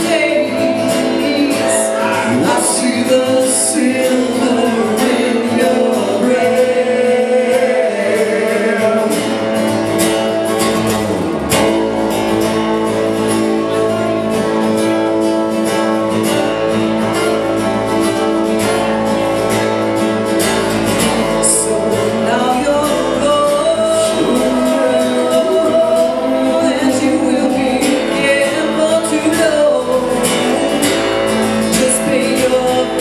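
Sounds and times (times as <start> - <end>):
woman singing: 0.0 - 9.4, 21.0 - 30.8, 31.4 - 33.0
acoustic guitar: 0.0 - 33.0.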